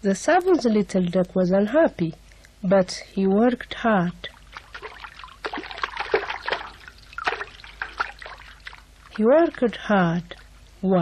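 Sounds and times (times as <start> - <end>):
water splashing and dripping: 4.2 - 10.6.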